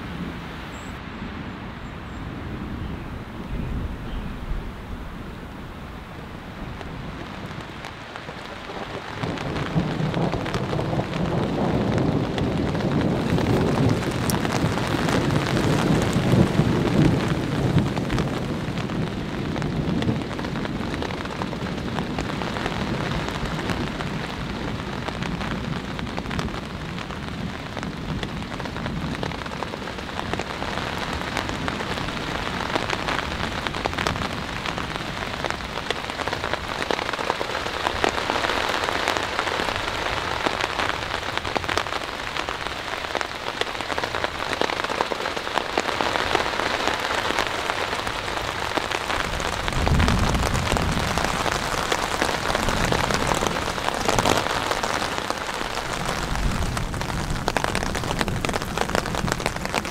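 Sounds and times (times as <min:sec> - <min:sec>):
distant thunder rumble: 0:00.0 - 0:45.0, 0:45.7 - 0:59.9
raindrops striking close by: 0:00.0 - 0:59.9
steady rain: 0:00.0 - 0:59.9.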